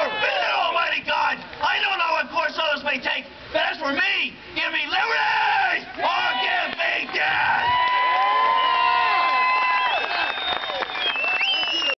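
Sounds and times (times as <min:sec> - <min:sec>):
crowd whooping and yelling: 0:00.0 - 0:00.7, 0:05.0 - 0:12.0
crowd clapping: 0:05.9 - 0:12.0.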